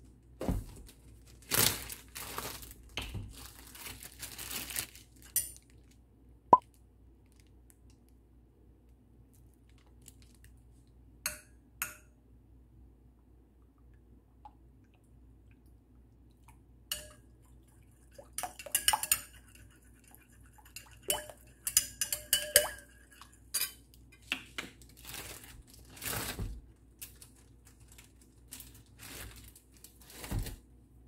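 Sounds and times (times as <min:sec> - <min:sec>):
metal spoon stirring in ceramic bowl: 0:16.9 - 0:17.3, 0:18.0 - 0:23.9.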